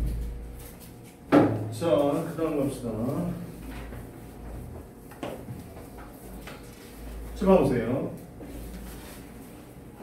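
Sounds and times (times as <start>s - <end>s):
man speaking: 7.4s - 8.2s.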